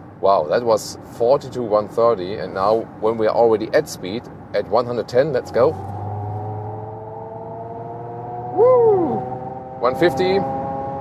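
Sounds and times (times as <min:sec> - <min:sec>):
synthetic car tones rising in pitch: 0:05.6 - 0:11.0.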